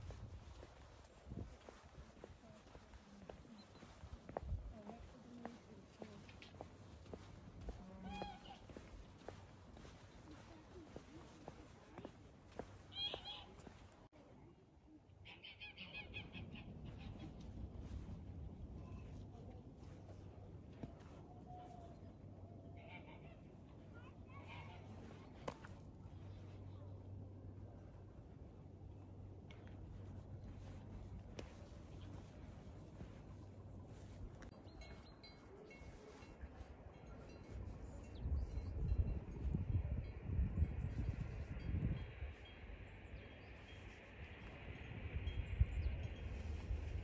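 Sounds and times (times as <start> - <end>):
wind buffeting microphone: 0.0 - 5.6, 35.8 - 47.0
faint fowl calls: 7.7 - 9.9, 12.9 - 13.8
faint chime-like tinkling: 34.0 - 47.0.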